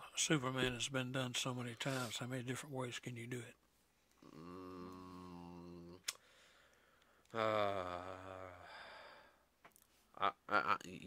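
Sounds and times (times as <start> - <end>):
man humming: 4.2 - 6.2, 7.3 - 8.9, 10.2 - 11.0.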